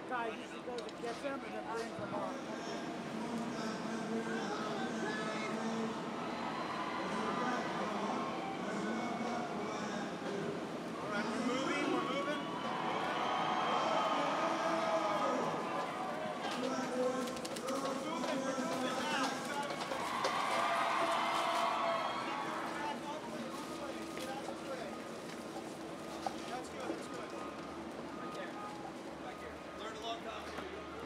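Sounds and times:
people chattering: 0:00.0 - 0:31.0.

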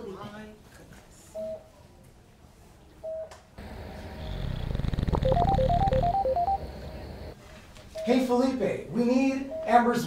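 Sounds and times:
mobile phone ringtone: 0:05.2 - 0:06.6
short electronic beep: 0:05.2 - 0:06.6.

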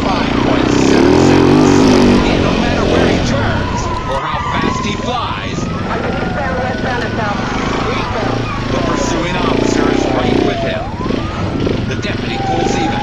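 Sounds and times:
siren wailing: 0:00.0 - 0:13.0
vehicle engine running: 0:00.0 - 0:13.0.

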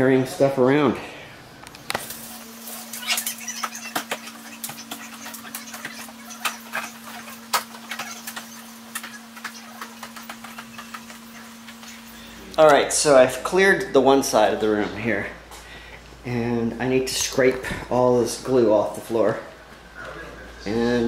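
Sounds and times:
steady low hum: 0:00.0 - 0:21.0.

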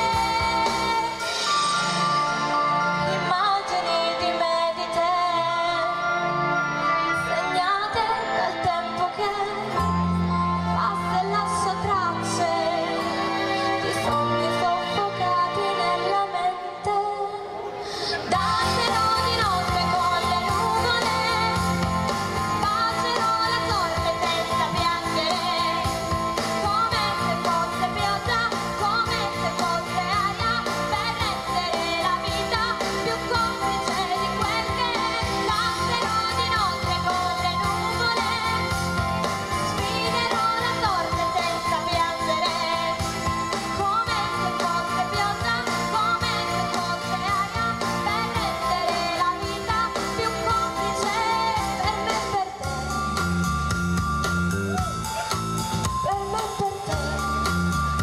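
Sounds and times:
woman singing into a microphone: 0:00.0 - 0:02.2, 0:03.0 - 0:09.9, 0:10.5 - 0:53.0, 0:56.0 - 0:57.7
backing music: 0:00.0 - 0:58.0.

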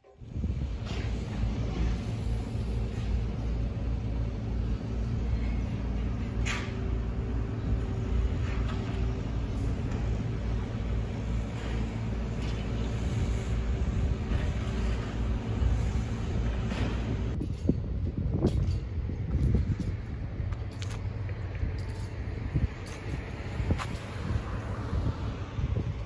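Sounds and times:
heavy engine rumbling: 0:00.1 - 0:26.0.

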